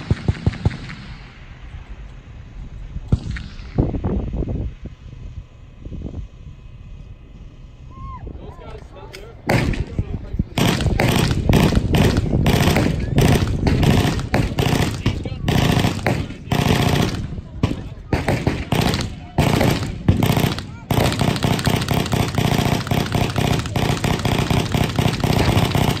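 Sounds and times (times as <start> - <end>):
machine guns firing: 0.0 - 1.3, 9.4 - 26.0.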